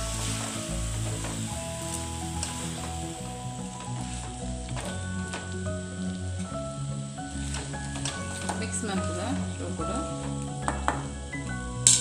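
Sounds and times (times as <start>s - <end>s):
background music held notes: 0.0s - 12.0s
food sizzling in a pan: 0.0s - 12.0s.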